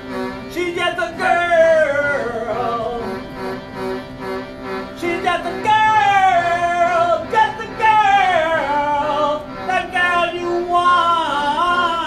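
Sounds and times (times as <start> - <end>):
man singing: 0.4 - 3.3, 5.0 - 12.0.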